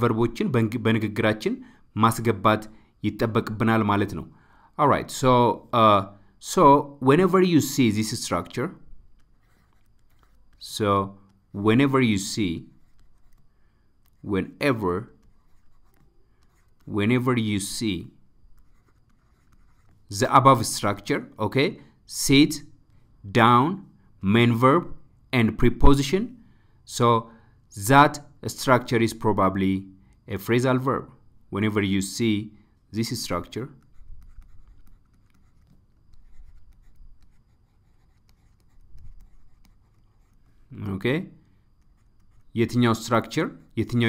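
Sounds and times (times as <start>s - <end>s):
stylus scratching on tablet: 7.8s - 17.9s, 18.5s - 21.4s, 33.3s - 44.0s.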